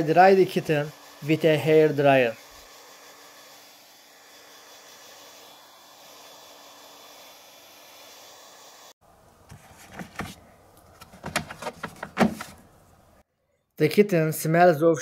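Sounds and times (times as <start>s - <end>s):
hair dryer blowing: 0.0s - 9.0s.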